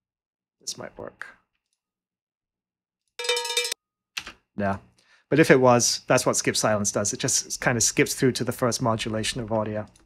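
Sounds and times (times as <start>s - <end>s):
cowbell rapid shakes: 3.2s - 3.8s.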